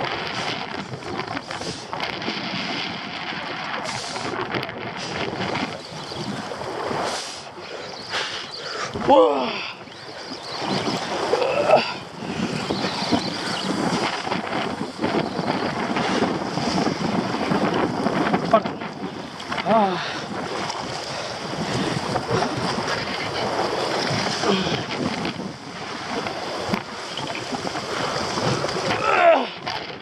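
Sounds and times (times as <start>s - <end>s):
waves washing against rocks: 0.0s - 30.0s
wind buffeting microphone: 0.0s - 30.0s.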